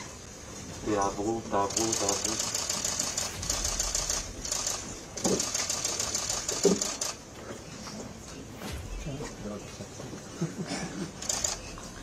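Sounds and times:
man speaking: 0:00.8 - 0:02.5
camera shutters clicking rapidly: 0:01.7 - 0:07.2, 0:11.2 - 0:11.8.

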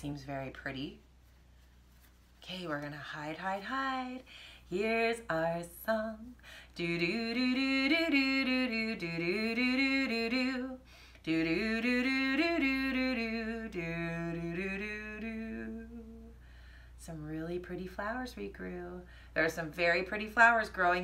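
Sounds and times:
woman singing wordless melody: 0:02.4 - 0:16.4, 0:17.0 - 0:21.0.

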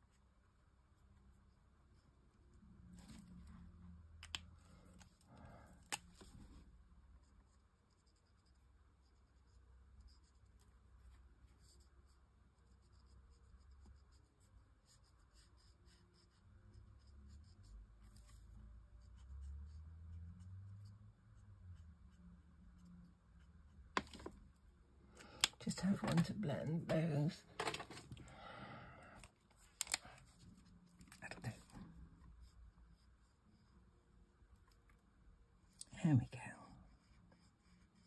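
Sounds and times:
marker strokes on cardstock: 0:07.4 - 0:24.3.

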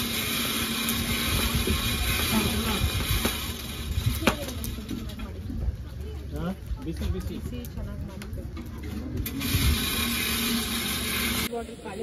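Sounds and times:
blower motor hum: 0:00.0 - 0:12.0
wind on microphone: 0:01.0 - 0:05.9, 0:09.1 - 0:10.2.

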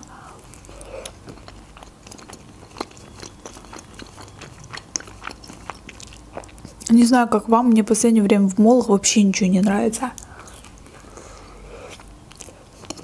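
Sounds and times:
chewing pizza: 0:00.0 - 0:07.0, 0:10.1 - 0:13.0.

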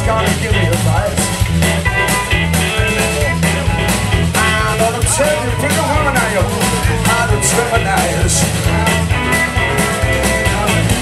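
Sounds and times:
drums at a steady beat: 0:00.0 - 0:11.0
electric guitars: 0:00.0 - 0:11.0.

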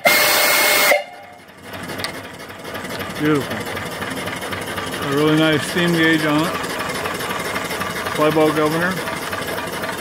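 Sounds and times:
steam whistle: 0:00.0 - 0:01.4
steam engine clattering: 0:00.0 - 0:10.0.

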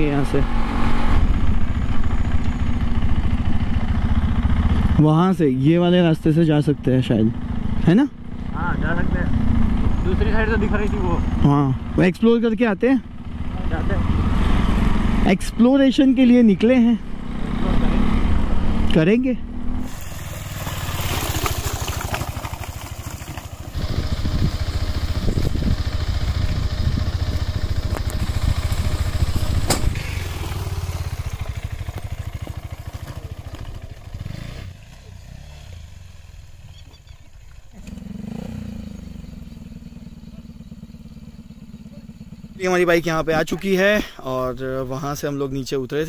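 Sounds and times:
motorcycle engine running: 0:00.0 - 0:46.0
engine idling: 0:19.9 - 0:38.2, 0:38.8 - 0:45.1.

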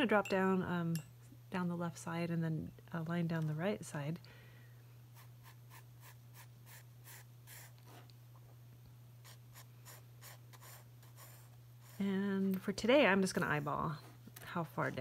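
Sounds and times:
steady low hum: 0:00.0 - 0:15.0
pencil scratching on paper: 0:05.2 - 0:07.8, 0:09.2 - 0:12.0.

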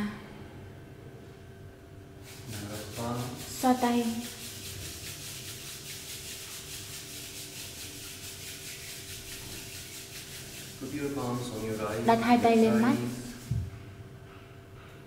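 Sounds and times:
hands rubbing together: 0:02.2 - 0:13.9.

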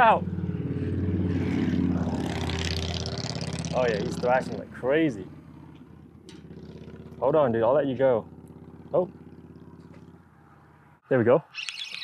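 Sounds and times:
low vehicle engine hum: 0:00.0 - 0:11.0.

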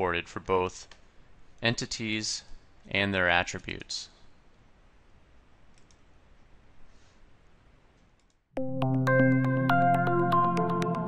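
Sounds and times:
low room hiss: 0:00.0 - 0:08.5
computer mouse clicks: 0:05.7 - 0:06.1, 0:08.0 - 0:08.4.

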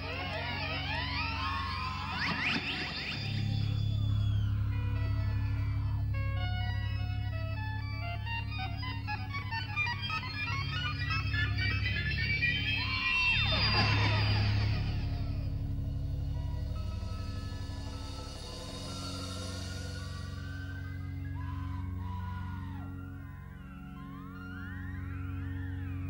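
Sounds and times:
gliding pitch sweeps: 0:00.0 - 0:26.0
low bass drone: 0:00.0 - 0:26.0.

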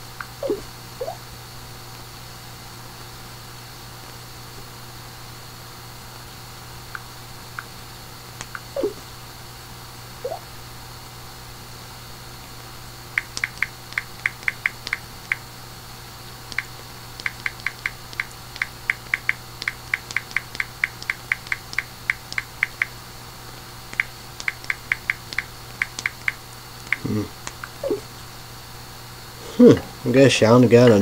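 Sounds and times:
low steady hum: 0:00.0 - 0:31.0
keyboard typing clicks: 0:13.2 - 0:15.4, 0:16.5 - 0:22.9, 0:23.9 - 0:27.8.

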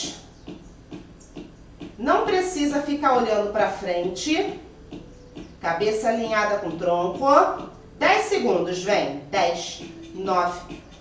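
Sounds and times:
faint regular ticking: 0:00.4 - 0:02.7, 0:04.0 - 0:08.0
woman speaking: 0:02.0 - 0:04.7, 0:05.6 - 0:10.8.

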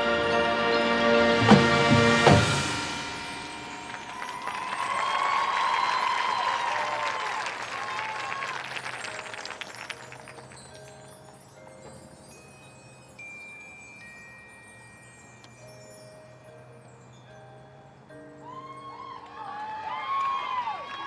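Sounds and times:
marching band chord: 0:00.0 - 0:04.4
chimes and mallet percussion: 0:00.0 - 0:19.7
crowd cheering and applause: 0:01.4 - 0:10.7, 0:18.4 - 0:21.0.

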